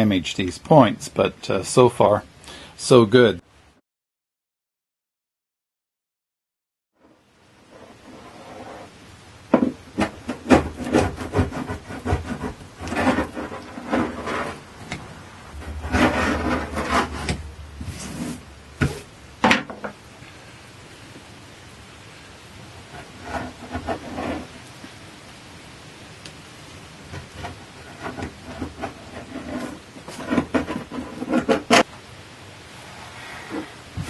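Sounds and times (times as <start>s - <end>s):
scraping on wooden planking: 7.6s - 20.0s, 22.8s - 24.7s, 27.0s - 31.9s.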